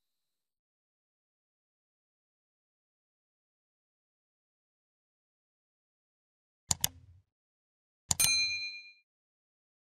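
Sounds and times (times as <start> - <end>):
mouse click: 6.7 - 7.2
bright bell ding: 8.2 - 9.0.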